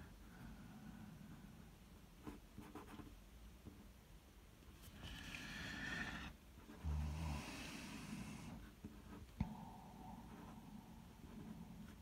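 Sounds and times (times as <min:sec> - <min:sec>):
pen scratching on paper: 0:02.2 - 0:03.2, 0:04.9 - 0:06.9, 0:08.4 - 0:09.4, 0:10.2 - 0:12.0.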